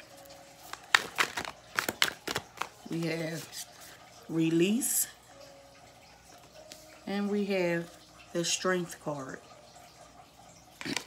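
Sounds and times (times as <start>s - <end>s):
cards flicking and snapping: 0.7s - 2.8s.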